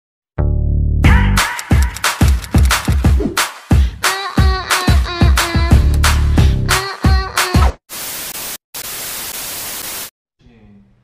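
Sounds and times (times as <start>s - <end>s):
television static hiss: 7.9s - 10.1s.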